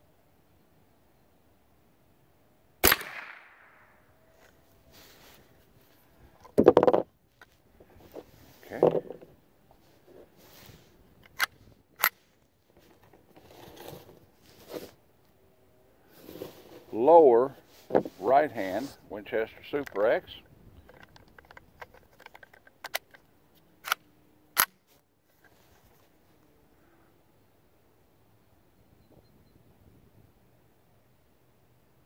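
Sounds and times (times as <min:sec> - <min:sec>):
rifle shot: 0:02.8 - 0:04.0
rifle handling clicks: 0:20.9 - 0:23.2.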